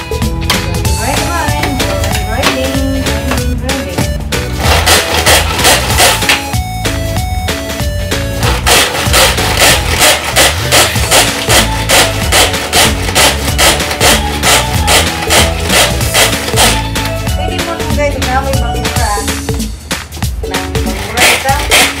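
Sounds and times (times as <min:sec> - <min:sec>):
background music with steady beat: 0:00.0 - 0:22.0
pull-cord food chopper whirring: 0:04.5 - 0:06.6, 0:08.3 - 0:17.1, 0:21.2 - 0:22.0.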